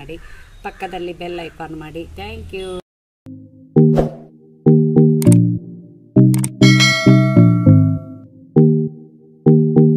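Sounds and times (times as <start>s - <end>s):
background music with low notes: 3.3s - 9.9s
bell chime effect: 6.6s - 8.2s.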